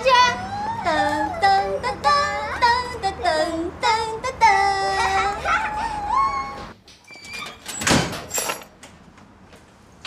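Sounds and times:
woman singing: 0.0s - 6.6s
girl laughing and squealing: 4.9s - 6.6s.

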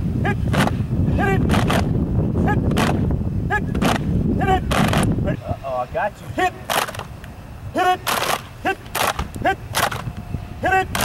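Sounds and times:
person shouting: 1.1s - 1.5s, 2.4s - 2.7s, 3.5s - 3.8s, 4.4s - 4.7s, 7.7s - 9.7s, 10.6s - 11.0s.

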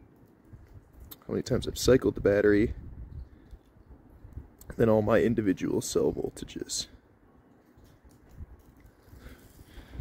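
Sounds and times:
low rumble of wind on microphone: 0.0s - 10.0s.

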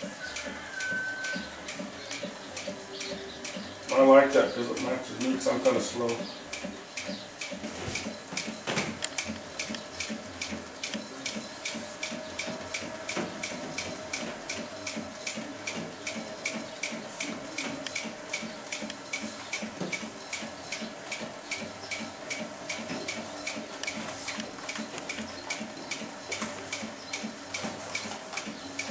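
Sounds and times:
sewing machine stitching ticking: 0.0s - 28.9s.

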